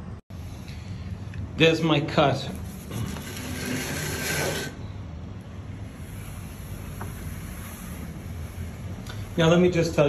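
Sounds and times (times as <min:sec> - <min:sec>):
wallpaper scraping rustle: 0:02.6 - 0:04.8.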